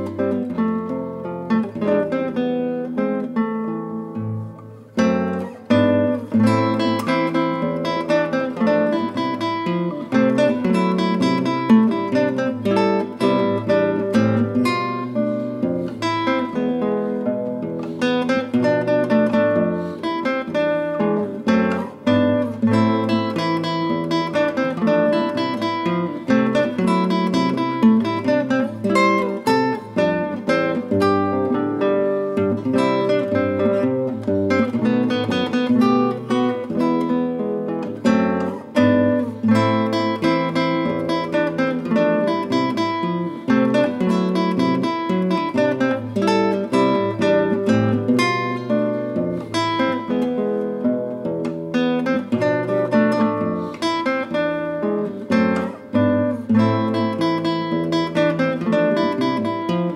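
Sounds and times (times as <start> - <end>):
classical guitar fingerstyle: 0.0 - 59.9.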